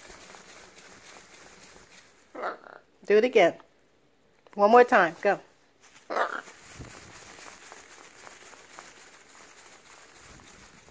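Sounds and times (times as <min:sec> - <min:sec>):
parrot wings flapping: 0:00.0 - 0:02.5, 0:05.8 - 0:10.9.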